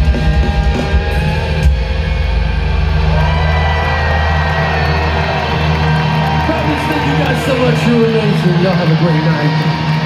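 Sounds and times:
low bass drone: 0.0 - 9.0.

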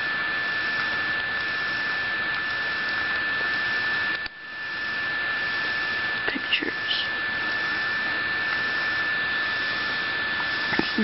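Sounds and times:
high-pitched whine: 0.0 - 11.0
recording hiss: 0.0 - 11.0.

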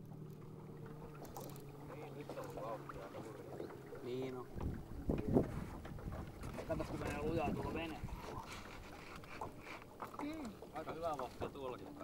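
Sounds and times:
boat motor humming: 0.0 - 12.0.

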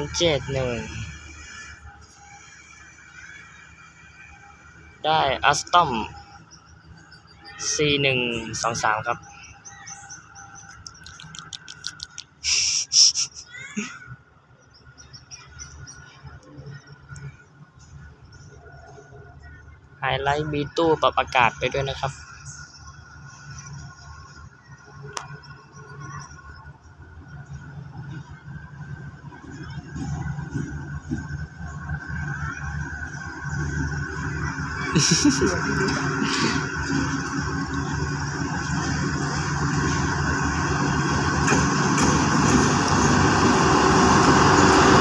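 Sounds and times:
diesel locomotive engine rumble: 0.0 - 45.0
small birds chirping: 5.7 - 14.0.

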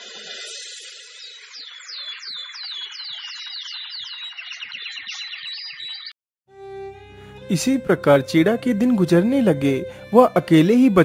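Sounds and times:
high falling bird chirps: 0.0 - 6.2.

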